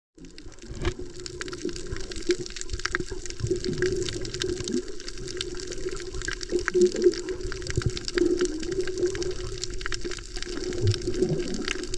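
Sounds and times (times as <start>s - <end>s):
muffled underwater wash: 0.2s - 11.9s
sharp underwater clicks and crackles: 0.2s - 11.9s.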